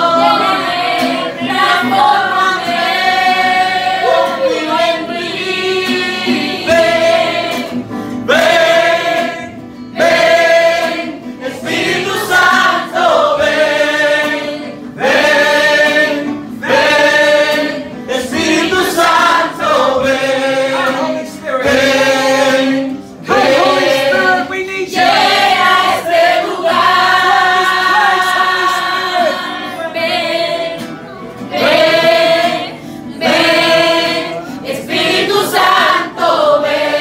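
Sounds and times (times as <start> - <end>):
acoustic guitar: 0.0 - 37.0
group singing along: 0.0 - 37.0.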